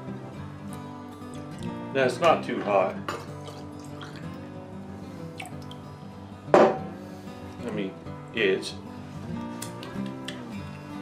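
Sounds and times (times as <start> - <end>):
soft background music: 0.0 - 11.0
faint water drips: 3.4 - 4.4, 5.2 - 6.0
glass jar clunk: 6.5 - 6.9.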